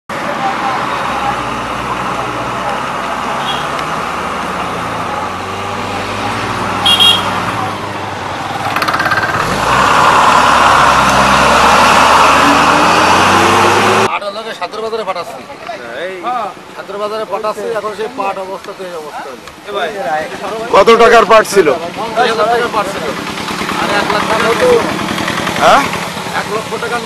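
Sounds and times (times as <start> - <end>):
street noise: 0.1 - 27.0
vehicle engine running: 0.6 - 14.1, 21.8 - 27.0.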